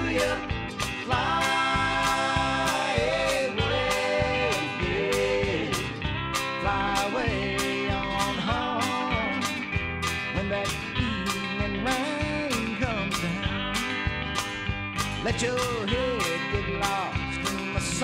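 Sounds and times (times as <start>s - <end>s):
guitars with bending notes: 0.0s - 18.0s
steady drum beat: 0.0s - 18.0s.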